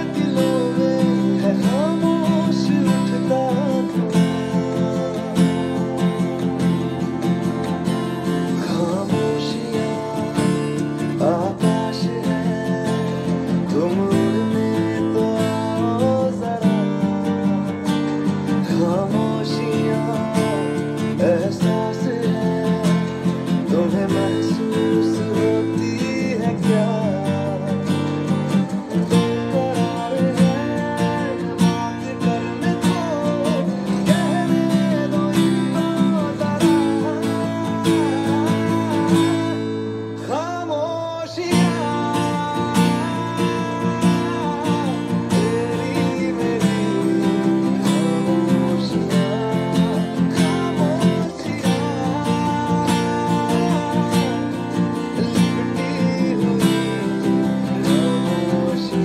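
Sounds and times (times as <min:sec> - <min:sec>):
acoustic guitar strumming chords: 0:00.0 - 0:59.0.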